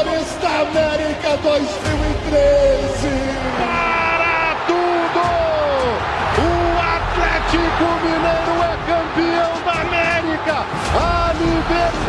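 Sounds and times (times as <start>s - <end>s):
background music: 0.0s - 12.0s
commentator shouting: 0.0s - 12.0s.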